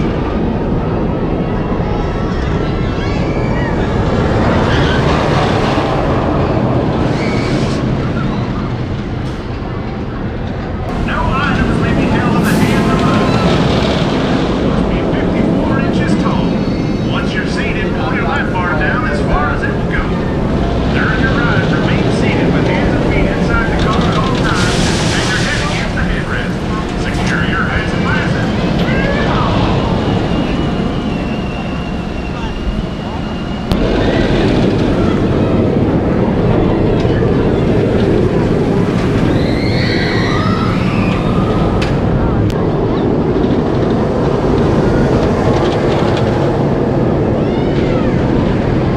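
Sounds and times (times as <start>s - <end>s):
roller coaster rumbling on track: 0.0s - 48.9s.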